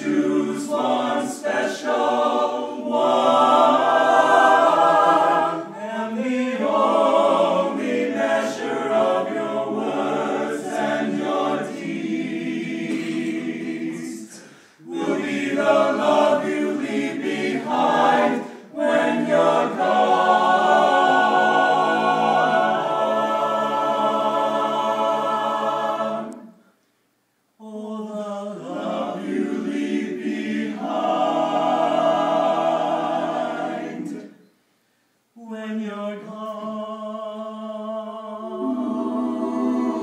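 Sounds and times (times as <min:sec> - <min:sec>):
men singing in close harmony: 0:00.0 - 0:26.4.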